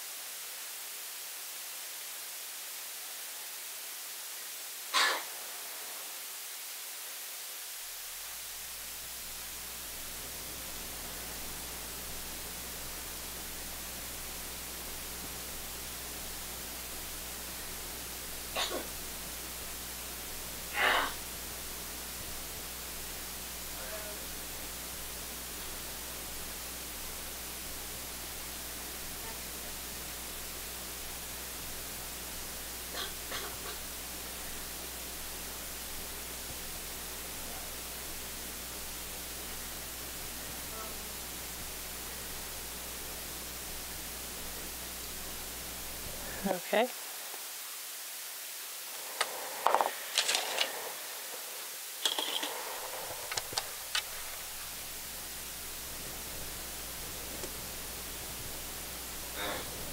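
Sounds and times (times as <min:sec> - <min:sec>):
background hiss: 0:00.0 - 0:59.9
low hum: 0:07.9 - 0:46.5
small tools clicking and knocking: 0:49.6 - 0:50.7, 0:52.0 - 0:52.6.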